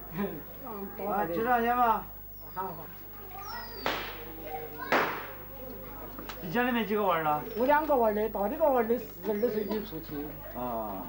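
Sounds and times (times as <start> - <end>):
faint children's voices: 0.0 - 8.0, 9.2 - 11.0.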